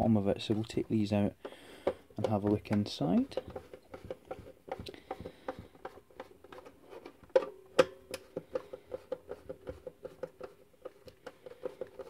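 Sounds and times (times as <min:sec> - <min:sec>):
screwdriver turning a screw: 0:01.8 - 0:07.4.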